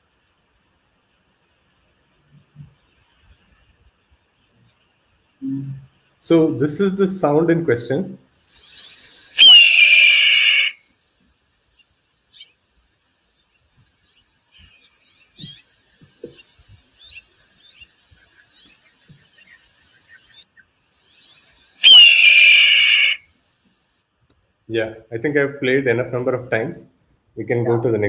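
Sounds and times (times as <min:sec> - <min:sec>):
hawk scream: 0:09.3 - 0:10.8, 0:21.8 - 0:23.3.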